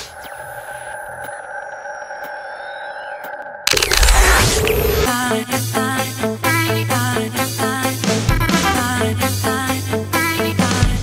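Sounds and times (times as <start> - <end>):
electronic drone: 0.0 - 5.2.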